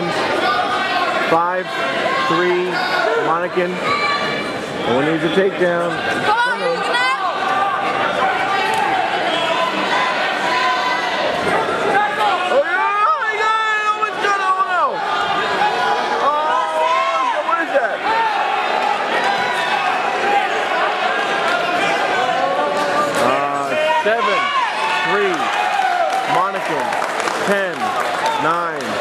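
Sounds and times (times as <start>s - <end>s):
crowd talking and shouting: 0.0s - 29.0s.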